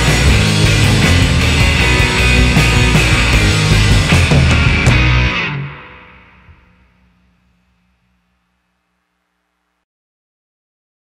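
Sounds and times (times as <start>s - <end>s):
drums: 0.0s - 8.3s
guitar chord ringing: 0.0s - 8.7s
distorted electric guitar: 0.0s - 9.1s.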